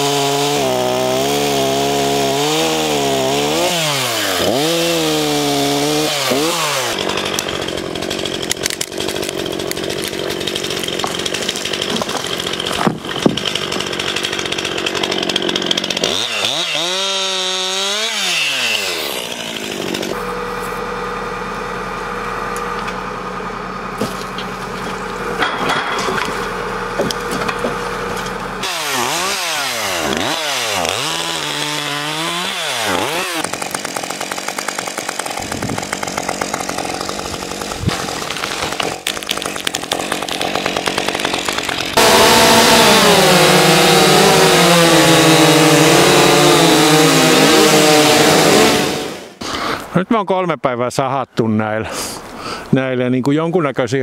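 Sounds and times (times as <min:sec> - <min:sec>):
chainsaws revving and cutting wood: 0:00.0 - 0:50.0.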